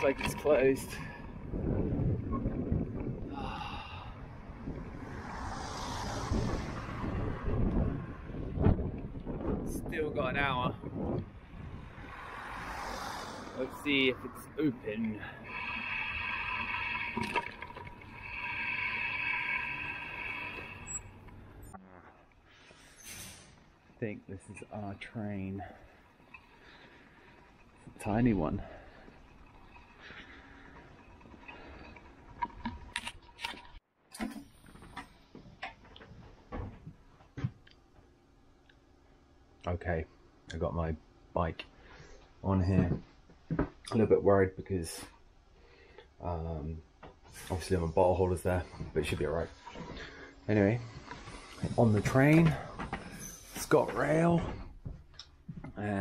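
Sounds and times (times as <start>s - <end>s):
wind buffeting microphone: 0.2s - 12.7s
car overtaking: 4.0s - 9.4s, 11.0s - 21.9s.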